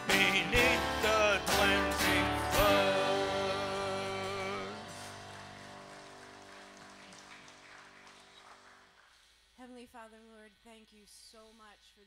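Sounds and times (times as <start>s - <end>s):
faint room hiss: 7.1s - 12.0s.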